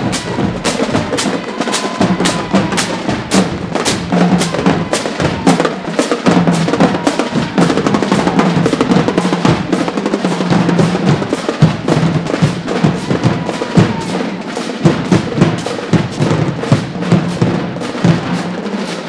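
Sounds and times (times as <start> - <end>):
lower drum beats: 0.0 - 19.0
snare drums playing cadence: 0.0 - 19.0.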